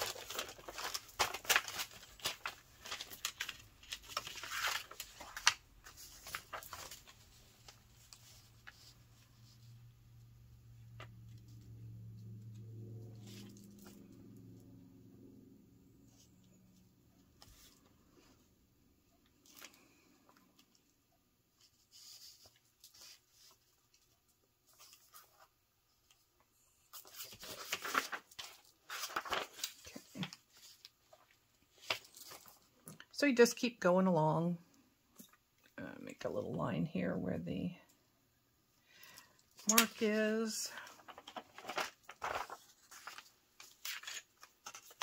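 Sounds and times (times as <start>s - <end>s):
paper rustling and crinkling: 0.0s - 9.9s, 21.5s - 26.2s, 26.9s - 32.9s, 39.4s - 45.0s
faint low hum: 6.2s - 19.3s.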